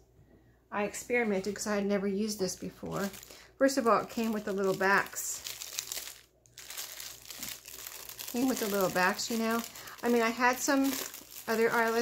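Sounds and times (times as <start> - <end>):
plastic packet crinkling: 2.5 - 12.0.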